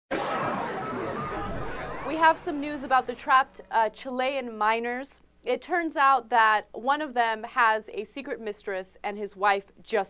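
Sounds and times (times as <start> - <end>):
rising sweep: 1.0 - 3.3
news intro sting: 1.0 - 4.0.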